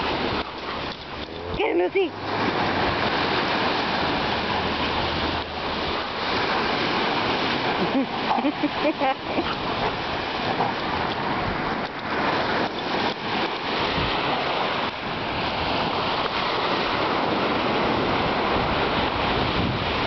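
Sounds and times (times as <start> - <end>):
surf breaking on beach: 0.0 - 20.0
wind rumbling on microphone: 0.0 - 20.0.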